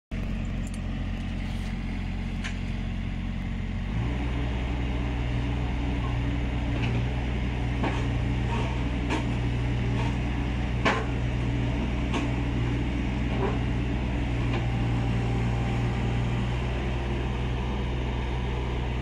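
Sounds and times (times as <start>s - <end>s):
excavator diesel engine running: 0.1s - 19.0s.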